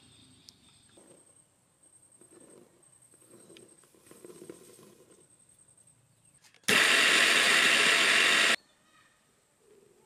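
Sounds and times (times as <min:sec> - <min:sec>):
electric mixer grinder running: 0:06.7 - 0:08.6.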